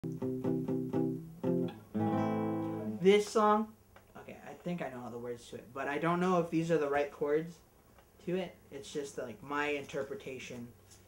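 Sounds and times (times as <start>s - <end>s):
fingerpicked acoustic guitar: 0.0s - 3.1s.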